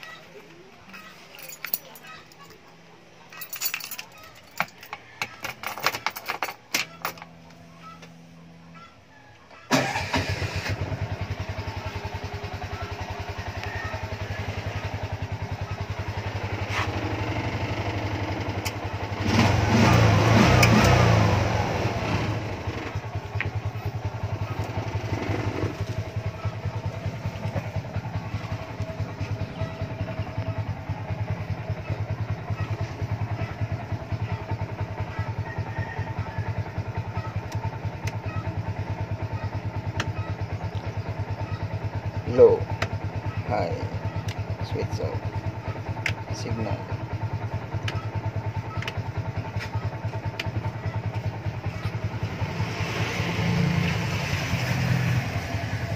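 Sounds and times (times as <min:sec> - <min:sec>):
auto-rickshaw engine idling and revving: 0:03.4 - 0:55.9
push-button starter: 0:09.7 - 0:11.0.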